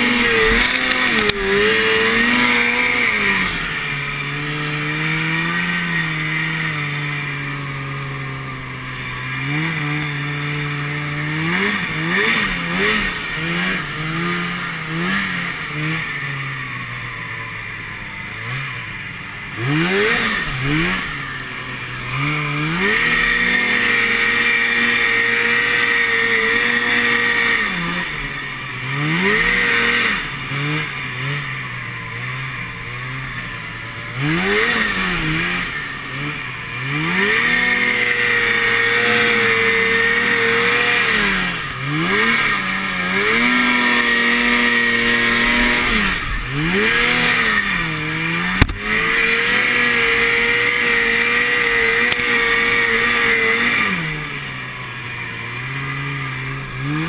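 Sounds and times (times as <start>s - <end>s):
snowmobile engine revving: 0.0s - 57.0s.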